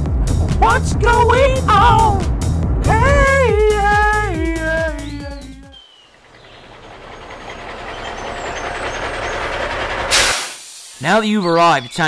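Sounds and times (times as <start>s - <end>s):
road noise: 0.0s - 12.0s
van engine rumbling: 0.0s - 12.0s
brake hiss: 7.1s - 11.3s.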